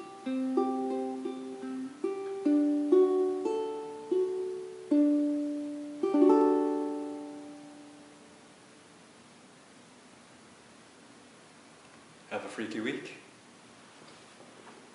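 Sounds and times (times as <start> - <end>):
ukulele playing: 0.0 - 8.3.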